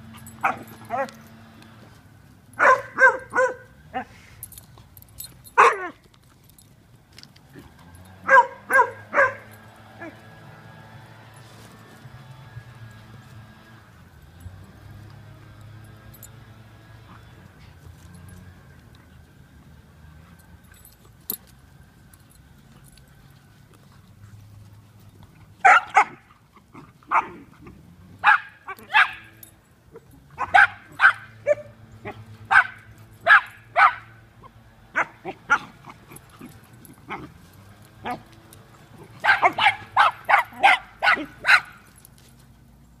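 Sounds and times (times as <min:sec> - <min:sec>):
dogs barking: 0:00.1 - 0:01.2, 0:02.5 - 0:04.2, 0:05.5 - 0:06.0, 0:07.8 - 0:10.4, 0:25.6 - 0:27.5, 0:28.2 - 0:42.0.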